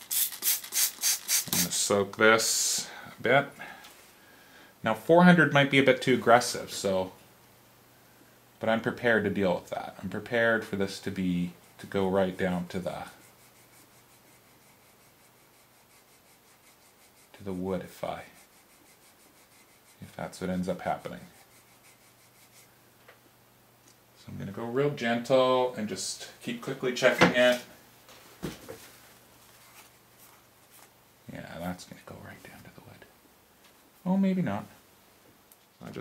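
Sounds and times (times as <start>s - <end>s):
sandpaper rubbing on wood: 13.0s - 22.7s.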